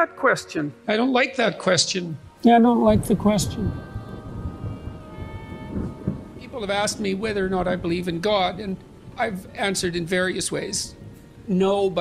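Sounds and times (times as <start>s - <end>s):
ambient music held notes: 0.0s - 12.0s
low rumbling noise: 2.7s - 12.0s.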